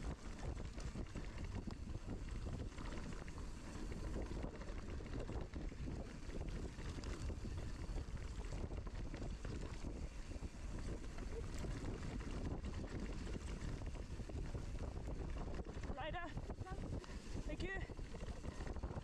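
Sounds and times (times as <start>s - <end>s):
bike tyre noise and rattle: 0.0s - 19.0s
wind rushing on microphone: 0.0s - 19.0s.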